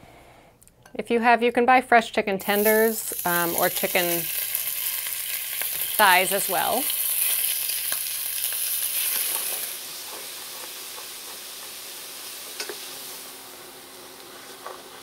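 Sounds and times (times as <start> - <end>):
chicken sizzling in oil: 2.4 - 15.0.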